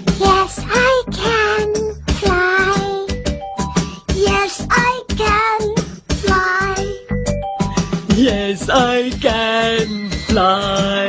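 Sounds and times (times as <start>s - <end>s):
child singing: 0.0s - 3.2s, 4.1s - 7.1s
backing track with steady beat: 0.0s - 11.0s.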